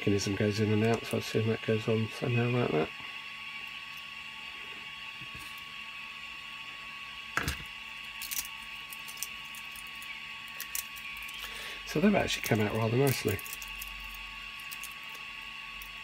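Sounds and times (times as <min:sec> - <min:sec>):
background hum: 0:00.0 - 0:16.0.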